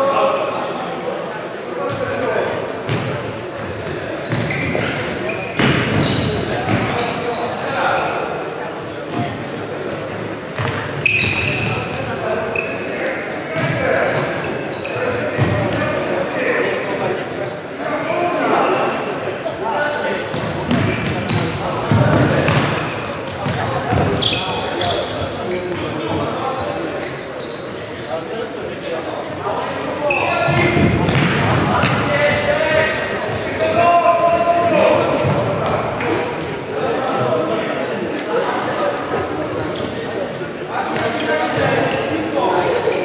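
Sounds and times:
shoes squeaking on wooden court: 0.6 - 1.0, 1.8 - 43.0.

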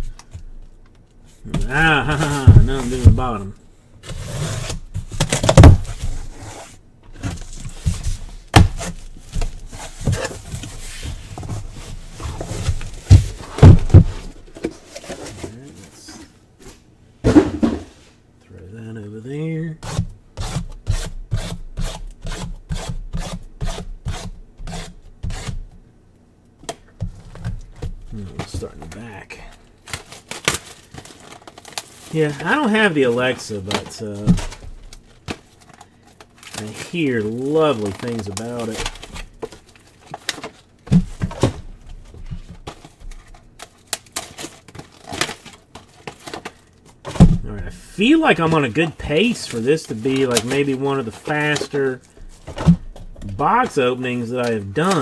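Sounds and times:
cardboard boxes rubbing and scraping: 4.0 - 5.1, 9.6 - 15.6.

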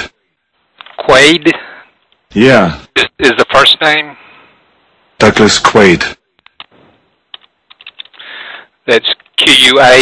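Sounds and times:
keyboard keystrokes over telephone: 6.4 - 8.2.

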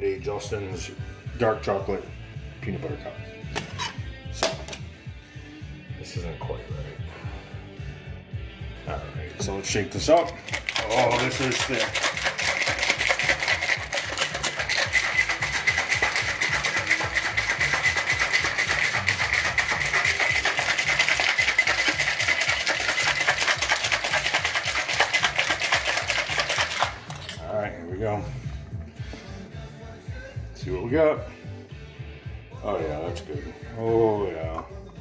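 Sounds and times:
metal cocktail shaker rattling: 10.0 - 27.5.

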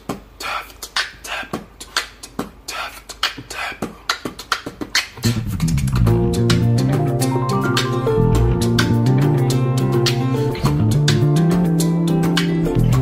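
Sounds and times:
beatboxing: 0.0 - 13.0
guitar with low notes: 5.2 - 13.0.

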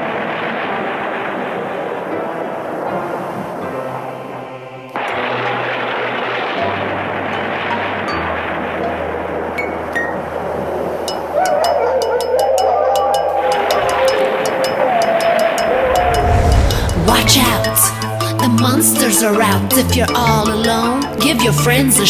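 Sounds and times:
low music drone: 15.6 - 19.4.

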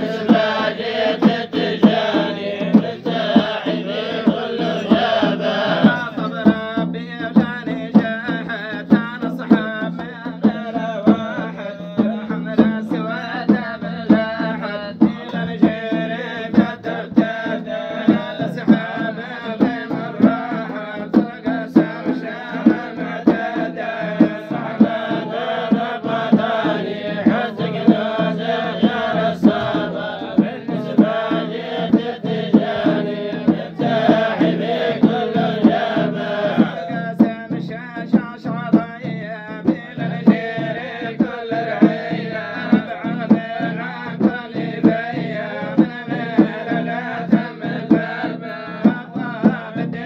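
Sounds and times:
frame drums beating: 0.0 - 50.0
men chanting together: 0.0 - 50.0.

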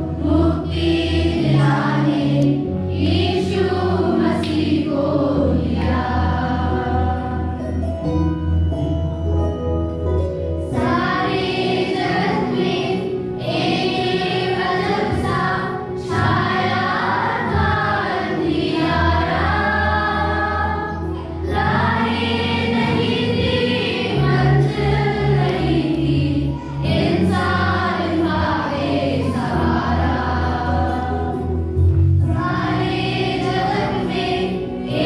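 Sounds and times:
children's choir singing: 0.0 - 7.8, 10.7 - 35.0
sustained low accompaniment: 0.0 - 35.0.

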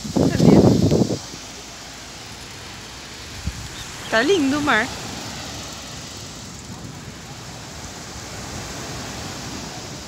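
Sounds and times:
sea surf hissing on beach: 0.0 - 10.0.

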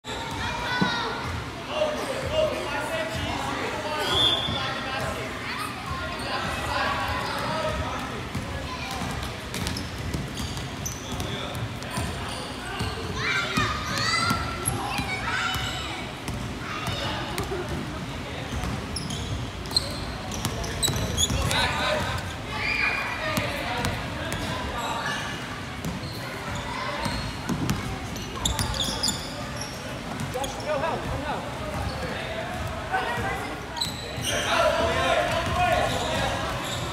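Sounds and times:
sneakers squeaking: 3.9 - 36.9.

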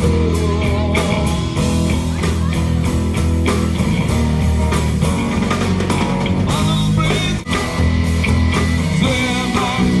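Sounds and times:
guitar: 0.0 - 10.0
live rock band playing: 0.0 - 10.0.

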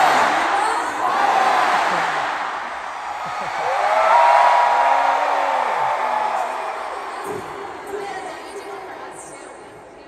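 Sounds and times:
stadium crowd cheering: 0.0 - 7.8.

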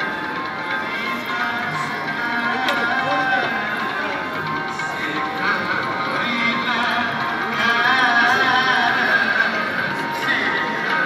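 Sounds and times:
person singing a hymn: 4.9 - 11.0.

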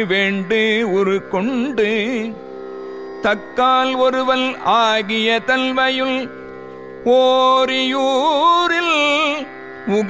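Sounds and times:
person singing: 0.0 - 2.5, 3.2 - 6.3, 7.0 - 10.0.

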